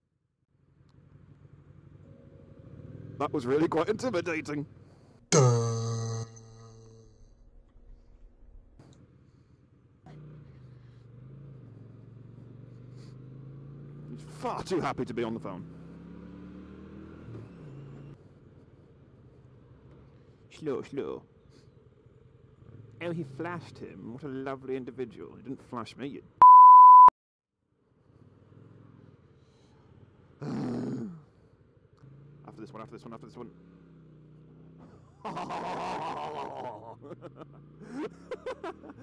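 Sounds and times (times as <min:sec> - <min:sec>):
motorcycle engine at low revs: 0:00.5 - 0:24.8, 0:27.9 - 0:36.0, 0:36.7 - 0:39.0.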